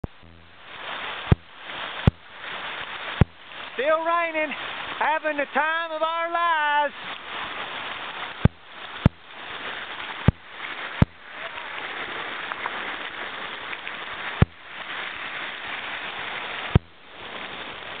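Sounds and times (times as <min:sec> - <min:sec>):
rain falling: 0:00.0 - 0:18.0.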